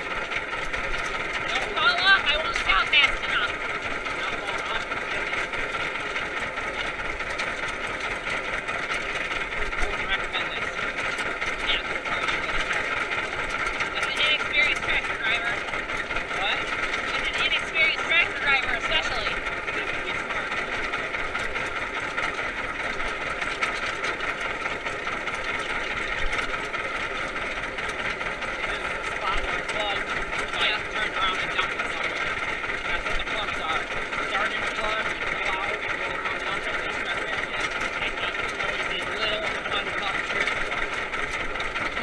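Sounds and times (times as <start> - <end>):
tractor engine running: 0.0 - 42.0.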